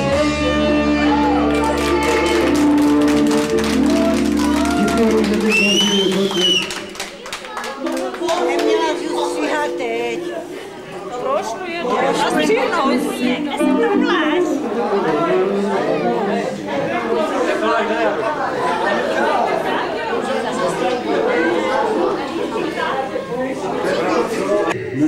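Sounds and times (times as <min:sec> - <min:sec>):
live band with saxophone and keyboard: 0:00.0 - 0:06.5, 0:12.1 - 0:15.8
many people talking: 0:00.0 - 0:25.0.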